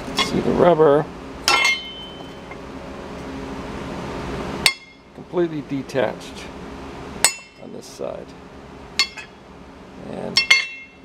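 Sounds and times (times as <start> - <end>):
low hum: 0.0 - 11.0
metal plate ringing: 1.4 - 2.5, 4.6 - 5.1, 7.2 - 7.7, 9.0 - 9.4, 10.3 - 11.0.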